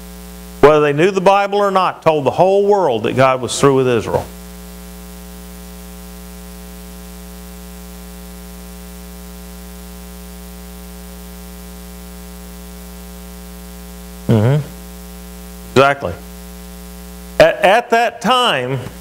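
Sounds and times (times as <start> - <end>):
electrical hum: 0.0 - 19.0
person speaking: 0.6 - 4.3, 14.3 - 14.8, 15.7 - 16.2, 17.4 - 19.0.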